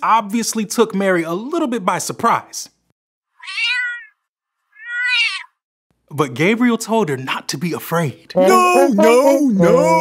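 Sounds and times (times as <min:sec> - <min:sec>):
cat meowing: 0:03.4 - 0:05.6.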